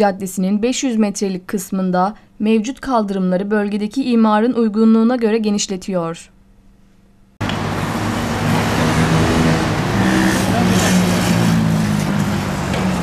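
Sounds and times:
road traffic passing: 7.4 - 13.0.

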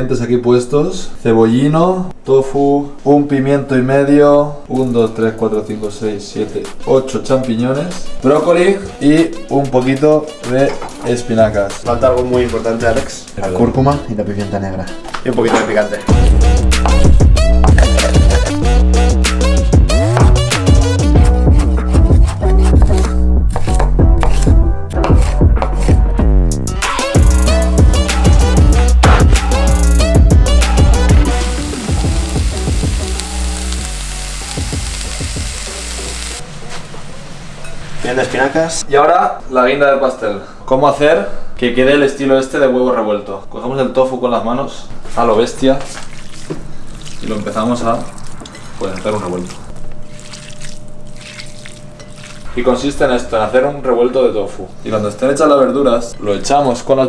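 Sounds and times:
background music: 4.5 - 36.4.

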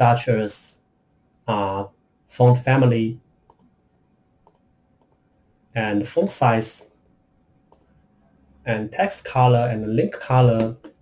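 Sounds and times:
faint computer mouse clicks: 3.5 - 5.2.

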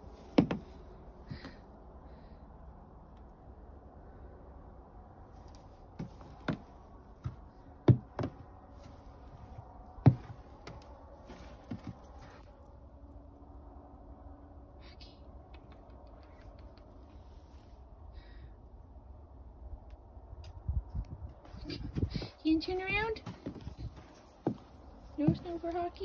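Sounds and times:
sharp short knocks and taps: 0.4 - 0.6, 7.3 - 8.4.

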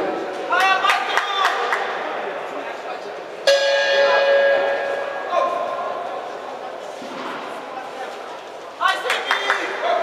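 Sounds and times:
boxing ring bell ringing: 3.5 - 5.3.

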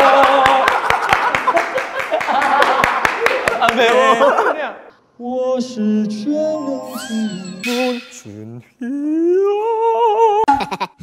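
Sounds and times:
man singing with vibrato: 5.2 - 10.6.

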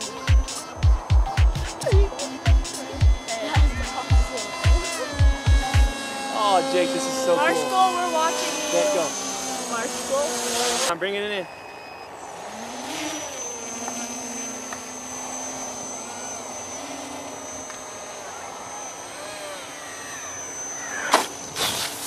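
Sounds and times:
model jet propeller whining: 0.0 - 22.0.

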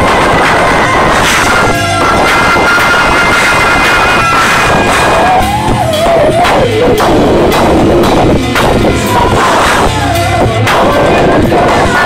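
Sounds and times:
drums: 0.0 - 12.0
live soul band playing: 0.0 - 12.0
person singing wavering: 0.0 - 12.0.

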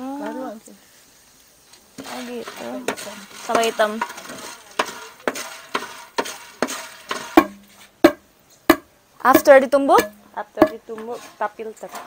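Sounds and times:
steady hiss: 0.0 - 12.0
beans scraping in pan: 0.1 - 8.1, 9.3 - 12.0.

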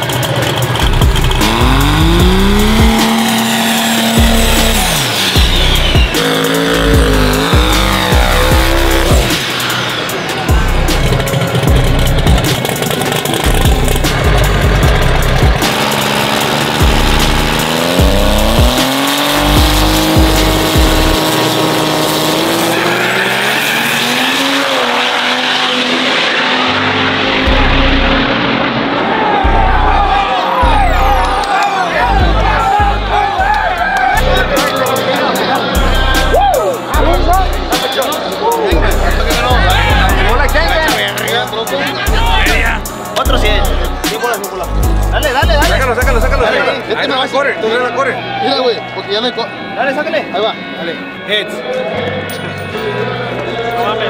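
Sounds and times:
tire squeal: 0.0 - 14.0, 15.6 - 36.9
music with thumping beat: 0.0 - 21.3
truck engines revving hard: 0.0 - 48.2.

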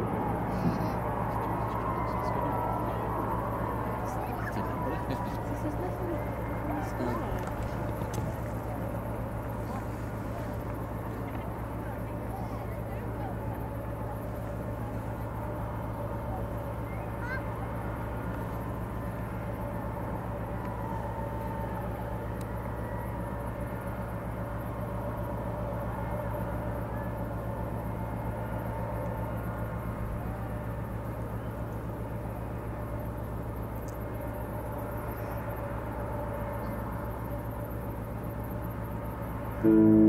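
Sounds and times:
ship engine low hum: 0.0 - 40.0.

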